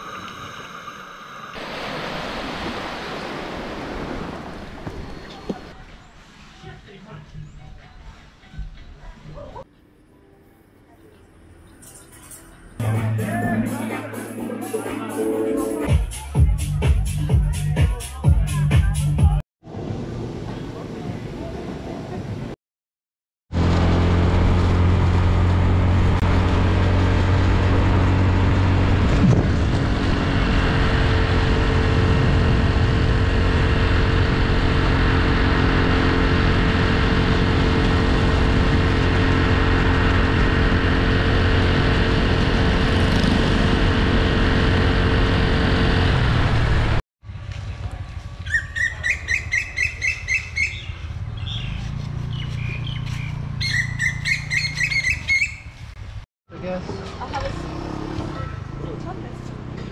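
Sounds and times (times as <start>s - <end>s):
motor scooter engine drone: 23.5s - 56.2s, 56.9s - 59.9s
wind rush on microphone: 28.7s - 34.6s
bird chirping: 48.5s - 55.8s.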